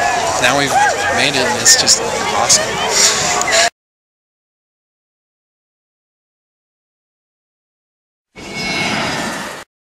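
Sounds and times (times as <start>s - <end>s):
whooshing transition effect: 8.4s - 9.6s.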